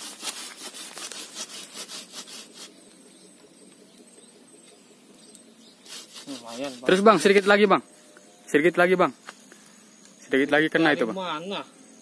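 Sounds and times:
hand saw cutting branch: 0.0s - 2.8s, 5.8s - 7.6s.

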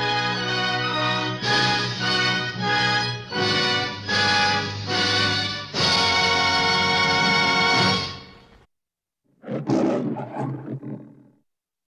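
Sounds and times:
lion roaring: 9.4s - 11.4s.

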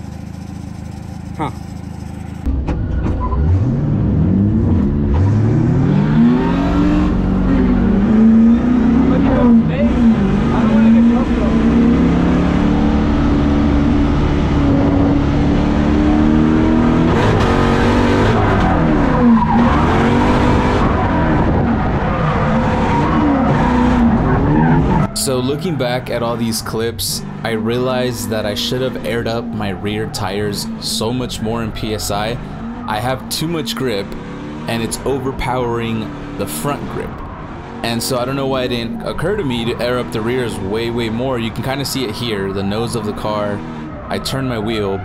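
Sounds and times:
car engine revving: 0.0s - 45.0s.

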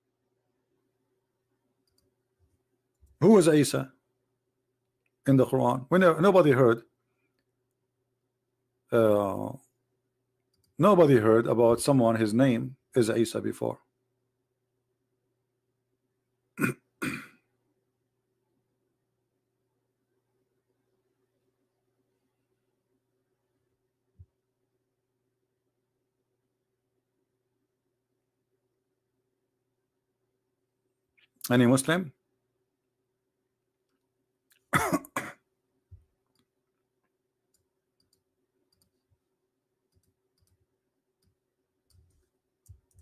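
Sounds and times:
man coughing: 16.6s - 17.4s, 34.7s - 35.5s
man clearing his throat: 16.6s - 17.5s, 34.7s - 35.5s.

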